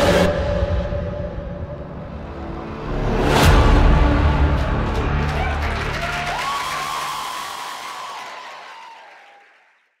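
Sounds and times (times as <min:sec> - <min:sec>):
audience applauding: 0:04.5 - 0:10.0.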